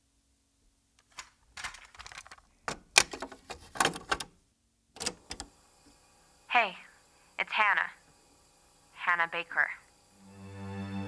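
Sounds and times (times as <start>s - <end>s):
cassette tape plastic clicks: 1.0s - 4.3s, 5.0s - 5.5s
tape hiss: 4.9s - 11.0s.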